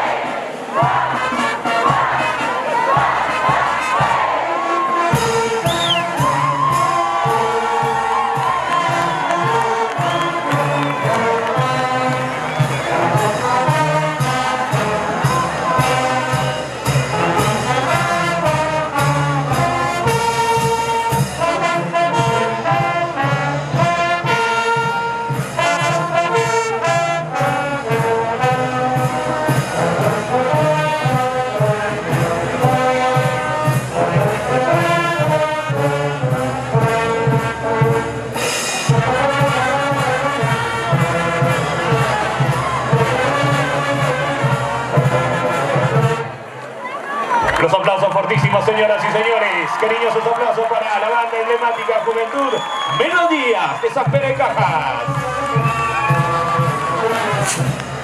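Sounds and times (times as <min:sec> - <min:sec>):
brass band playing lively tune: 0:00.0 - 0:58.0.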